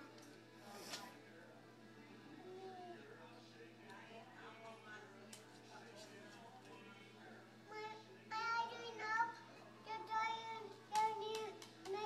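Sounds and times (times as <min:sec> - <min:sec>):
toddler sing-song voice: 0:07.7 - 0:12.0.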